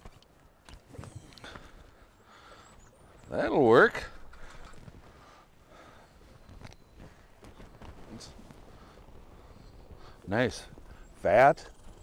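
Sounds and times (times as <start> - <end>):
quiet rustling: 0.0 - 12.0.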